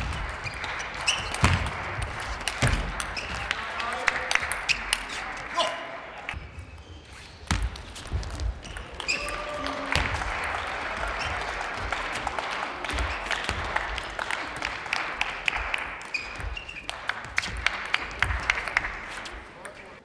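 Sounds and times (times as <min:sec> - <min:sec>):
crowd noise in a hall: 0:00.0 - 0:20.0
shoe squeaks on floor: 0:00.4 - 0:01.6, 0:06.4 - 0:09.3, 0:16.1 - 0:17.0.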